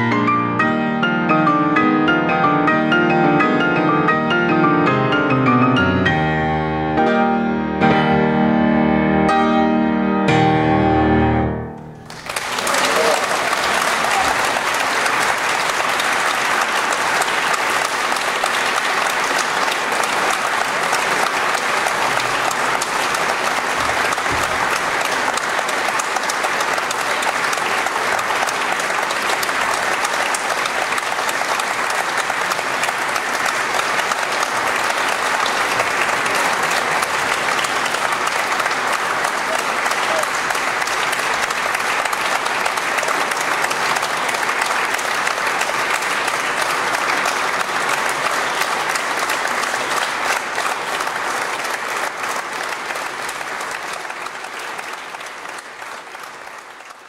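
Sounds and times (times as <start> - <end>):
audience applauding: 0.0 - 6.1, 12.0 - 57.0.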